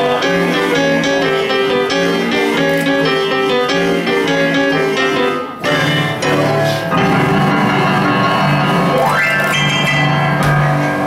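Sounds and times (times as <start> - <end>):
upright piano playing: 0.0 - 11.0.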